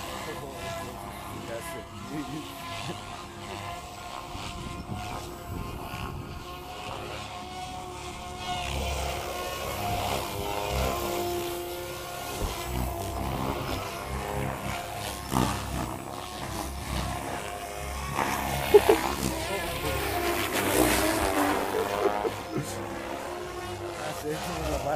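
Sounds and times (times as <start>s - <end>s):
electric motors whining: 0.0s - 24.9s
model helicopter rotors whirring: 0.0s - 24.9s.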